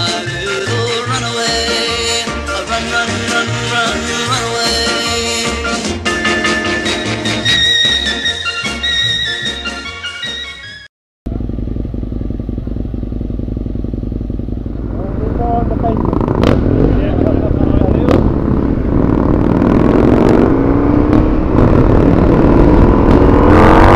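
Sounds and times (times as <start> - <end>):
motorcycle engine rumbling: 11.3 - 23.9.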